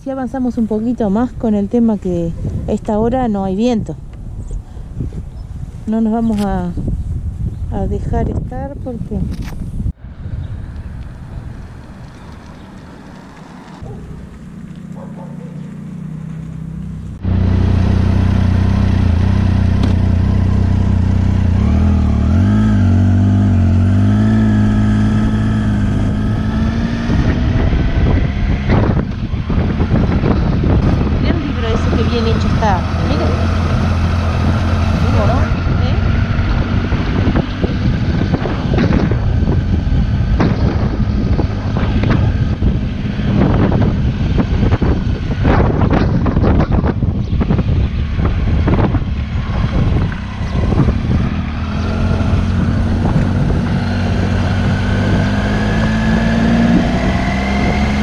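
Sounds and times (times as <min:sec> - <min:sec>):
wind on microphone: 0:00.0 - 0:15.3, 0:17.1 - 0:58.0
motorcycle engine running: 0:09.8 - 0:58.0.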